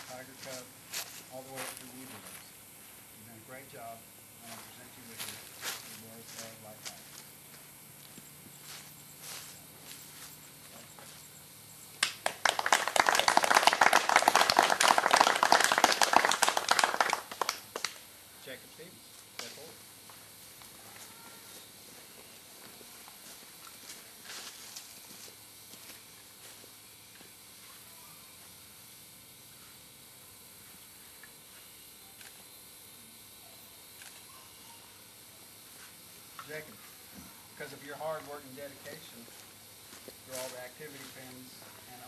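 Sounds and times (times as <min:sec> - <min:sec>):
group of people applauding: 0:12.0 - 0:18.0.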